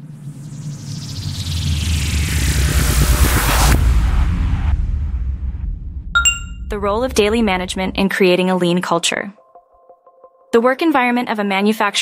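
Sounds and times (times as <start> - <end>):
deep rumbling bass: 2.3 - 8.1.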